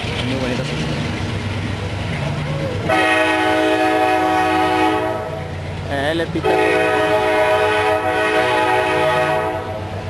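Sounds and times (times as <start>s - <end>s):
freight cars rumbling past: 0.0s - 10.0s
locomotive air horn: 2.9s - 5.5s, 6.4s - 9.9s.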